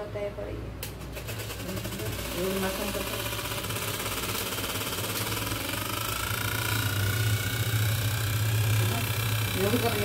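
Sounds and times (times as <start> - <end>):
handheld electric fan whirring: 0.8 - 10.0.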